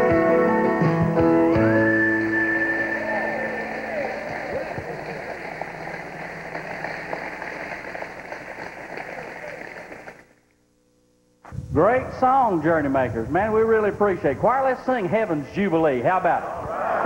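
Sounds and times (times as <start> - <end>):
people cheering: 1.8 - 10.2, 16.4 - 17.0
audience applauding: 2.2 - 10.4
choir holding a note: 2.3 - 5.3.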